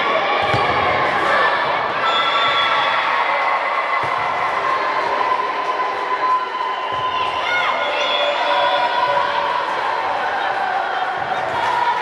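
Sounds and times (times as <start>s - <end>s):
crowd and players' voices: 0.0s - 12.0s
volleyball hits: 0.4s - 1.4s, 3.9s - 4.6s.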